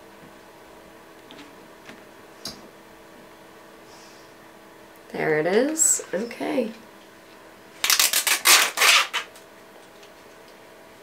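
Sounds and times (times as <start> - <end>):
packaging rustling and scraping: 7.8 - 9.4.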